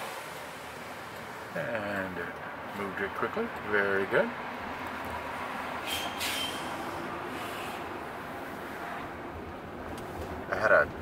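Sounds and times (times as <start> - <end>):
road and tyre noise in car cabin: 0.0 - 11.0.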